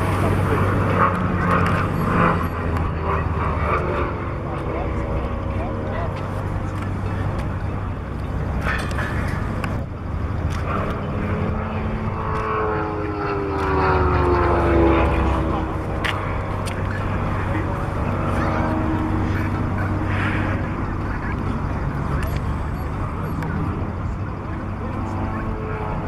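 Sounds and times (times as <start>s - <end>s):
light aircraft fly-by: 0.0s - 26.0s.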